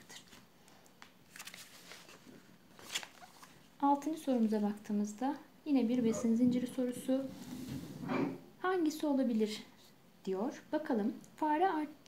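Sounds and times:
paper page turning: 1.0 - 3.6.

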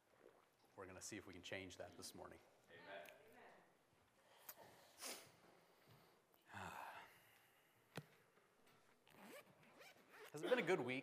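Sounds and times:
zipper being opened: 9.1 - 10.4.

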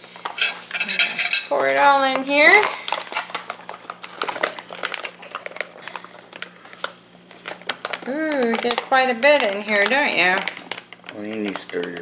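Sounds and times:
foil pouch crinkling: 1.5 - 12.0.

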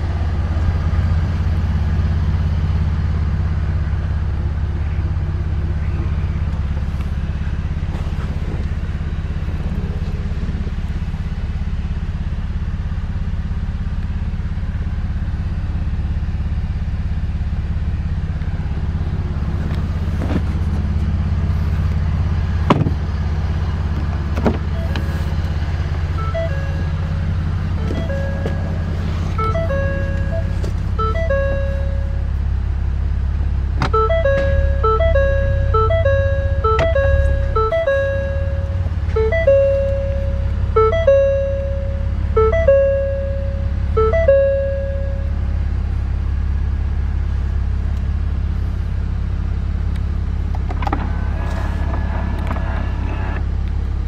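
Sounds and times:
low rumble inside vehicle cab: 0.0 - 54.0
simple melody of repeated notes: 26.1 - 32.3, 33.9 - 45.4
sharp clicks and knocks: 49.9 - 53.5.

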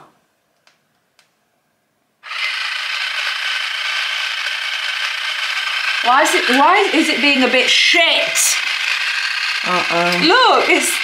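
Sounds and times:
water flosser motor buzzing: 2.2 - 11.0.

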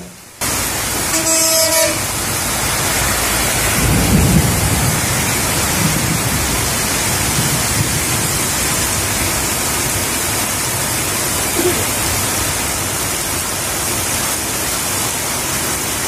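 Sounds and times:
heavy rain on road: 0.2 - 16.0.

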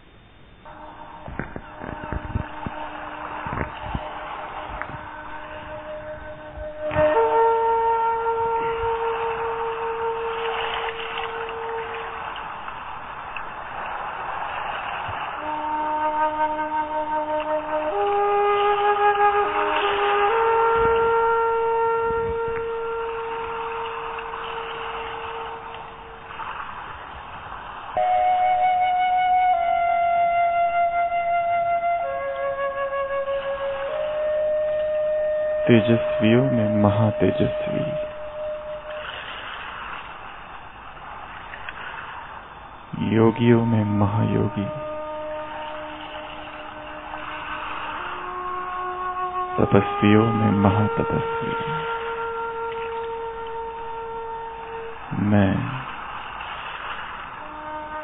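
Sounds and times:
soft sustained background music: 0.0 - 41.6, 42.7 - 58.0
soft hiss: 0.0 - 58.0
flute notes: 0.6 - 14.2, 15.1 - 26.8, 27.9 - 40.0, 43.0 - 56.3, 57.2 - 58.0.

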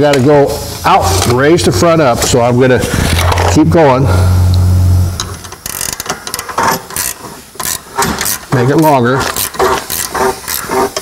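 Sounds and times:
low steady hum: 2.5 - 5.7
ratchet wrench clicking: 5.2 - 10.8.

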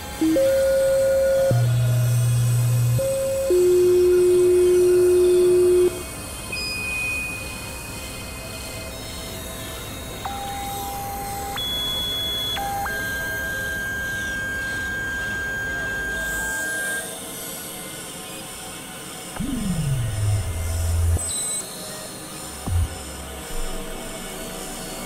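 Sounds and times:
electronic synthesizer music: 19.4 - 21.4, 22.7 - 23.0.

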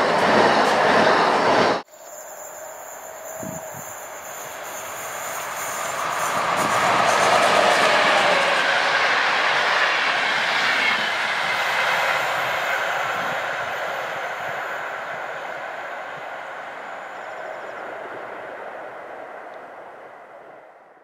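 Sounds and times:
electric train passing: 0.0 - 21.0.

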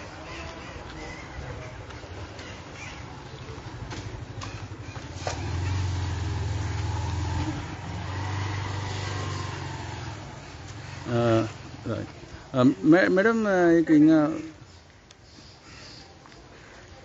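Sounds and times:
vehicle engine rumbling: 0.0 - 13.4.

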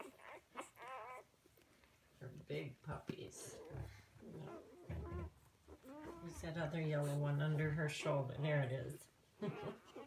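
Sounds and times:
puppies squeaking and whimpering: 0.0 - 1.6, 3.5 - 7.2, 9.4 - 10.0.

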